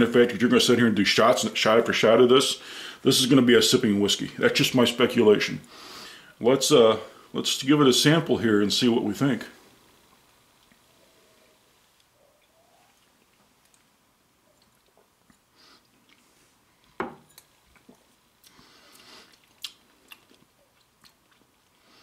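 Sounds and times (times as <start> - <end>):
lip smacks and tongue clicks: 13.0 - 16.3, 17.7 - 21.8.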